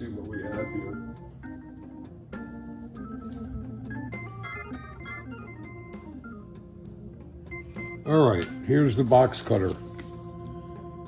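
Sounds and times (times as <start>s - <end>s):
organ music: 0.0s - 11.0s.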